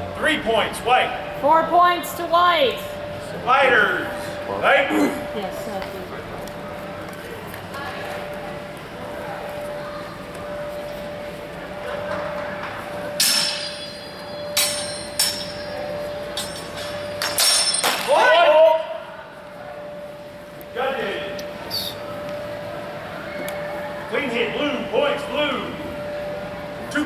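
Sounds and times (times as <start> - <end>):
faint steady hum: 0.0 - 27.0
swords clashing: 13.2 - 14.0
loud shout: 18.0 - 19.0.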